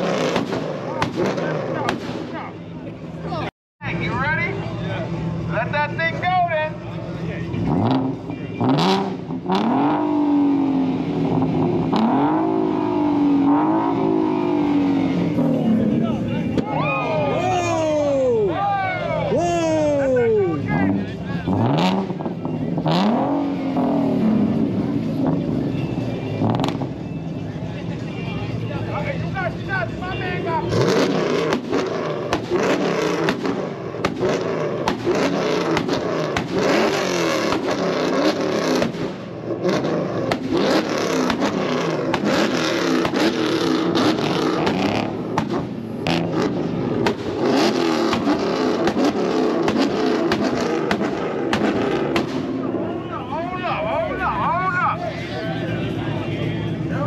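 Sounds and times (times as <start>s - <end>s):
exhaust popping and banging: 0.0s - 2.3s, 26.4s - 27.0s, 30.8s - 52.9s
crowd voices: 0.0s - 57.0s
engines revving against limiter: 0.0s - 57.0s.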